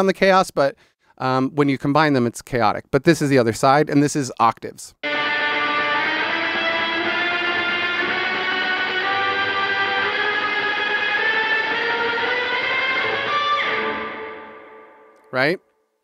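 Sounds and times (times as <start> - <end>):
overdriven electric guitar: 5.0 - 15.3.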